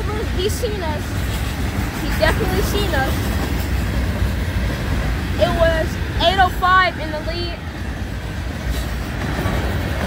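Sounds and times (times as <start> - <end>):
freight train rumbling past: 0.0 - 10.0
steel wheels on rails: 0.0 - 10.0.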